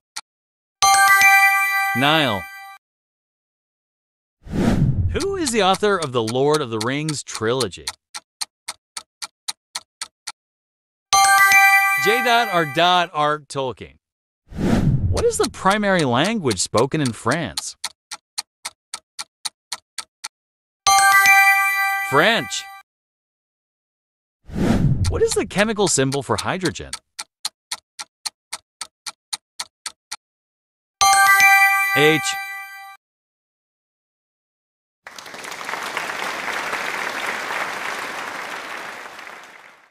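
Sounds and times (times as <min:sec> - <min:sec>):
countdown timer clock ticks: 0:00.8 - 0:02.7, 0:05.2 - 0:10.4, 0:11.2 - 0:13.2, 0:15.2 - 0:20.3, 0:20.9 - 0:22.8, 0:25.0 - 0:30.2, 0:31.0 - 0:33.0.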